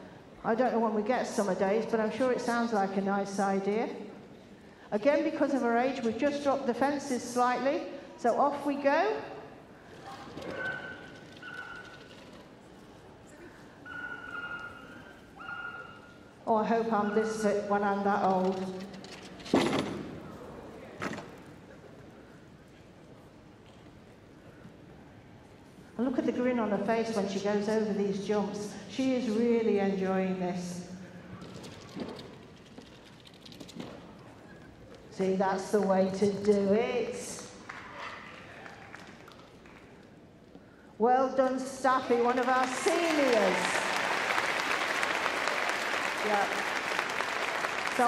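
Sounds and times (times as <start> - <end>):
faint hall ambience: 0.0 - 48.0
short high calls: 10.5 - 12.0, 13.8 - 16.3.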